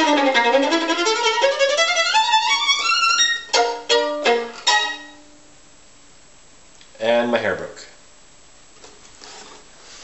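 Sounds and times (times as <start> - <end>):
faint rustling of handling: 8.7 - 10.0.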